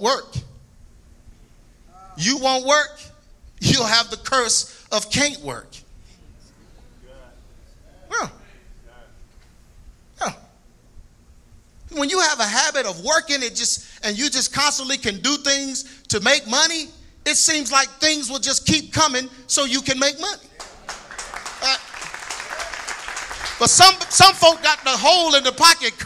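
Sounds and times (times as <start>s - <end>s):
quiet hall ambience: 0.0s - 26.0s
crowd clapping: 20.5s - 25.6s
man speaking over sound system: 23.6s - 26.0s.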